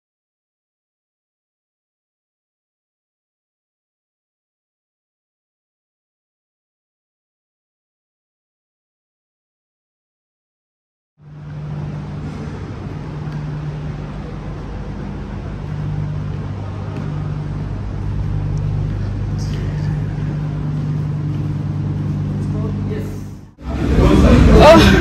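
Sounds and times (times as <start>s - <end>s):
road traffic and idling cars hum: 11.2s - 25.0s.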